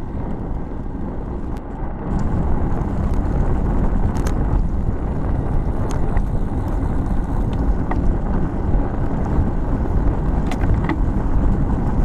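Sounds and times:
road noise: 0.0 - 12.0
wind buffeting microphone: 0.0 - 12.0.

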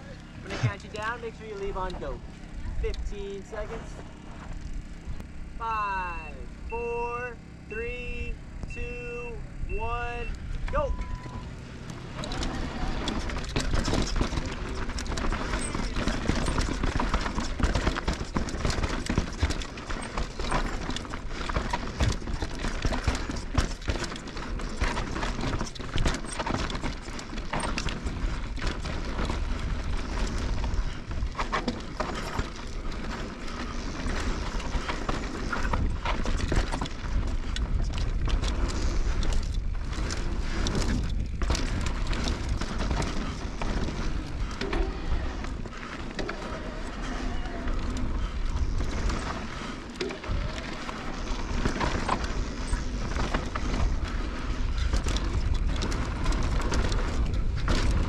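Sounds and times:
bike rattling over bumps: 0.0 - 5.6, 10.5 - 58.0
tyres crunching over dirt and rocks: 11.6 - 58.0.

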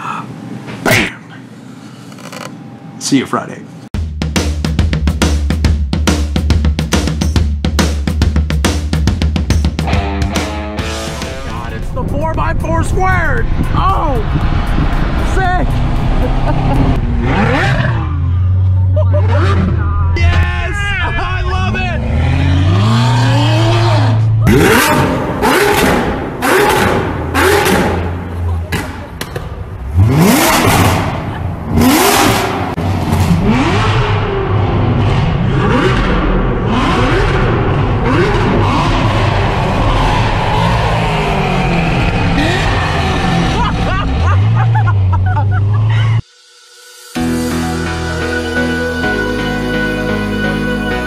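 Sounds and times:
car engine revving in tunnel: 13.6 - 20.2, 21.6 - 46.0.

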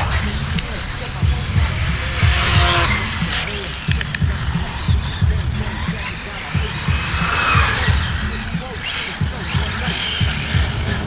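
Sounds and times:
low thumping: 0.0 - 11.0
tyres hissing on asphalt: 0.0 - 11.0.

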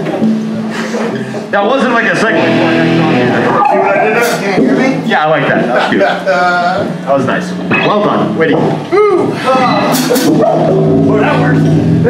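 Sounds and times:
electric guitar: 0.0 - 12.0.

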